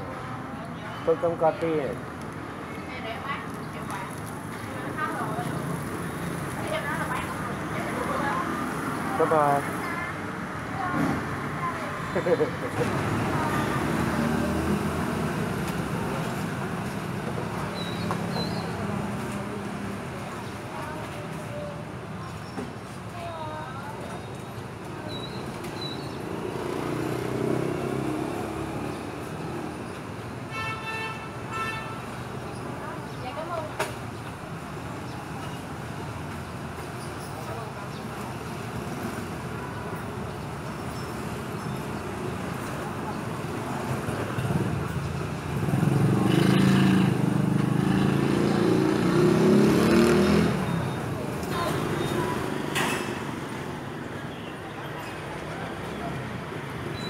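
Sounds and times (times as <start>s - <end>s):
street traffic: 0.0s - 57.0s
motorbike engine passing: 45.4s - 53.5s.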